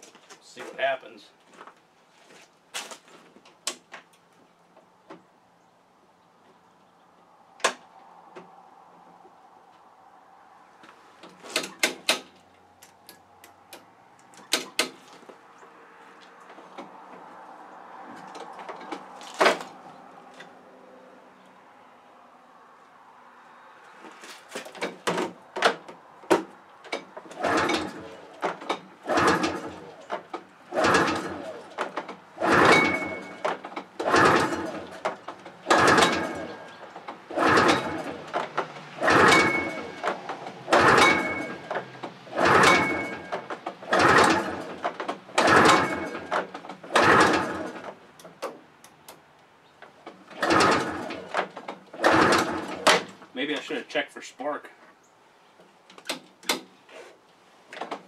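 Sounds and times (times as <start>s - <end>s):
engine cranking: 11.2s - 15.4s, 17.9s - 20.5s, 24.5s - 49.2s, 49.8s - 53.8s
recoil starter rope whirring: 27.2s - 48.0s, 50.3s - 53.2s.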